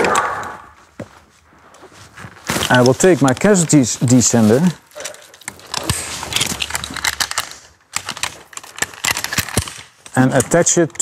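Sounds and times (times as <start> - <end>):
carabiners clinking and clicking: 2.6 - 11.0.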